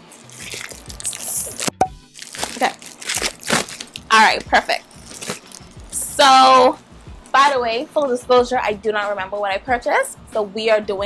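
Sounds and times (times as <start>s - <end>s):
plastic bag crinkling: 0.0s - 5.9s.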